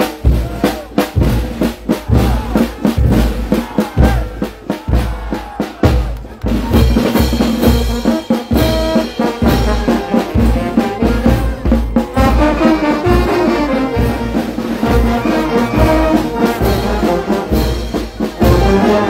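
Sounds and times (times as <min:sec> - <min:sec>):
bass drum and cymbals beat: 0:00.0 - 0:19.0.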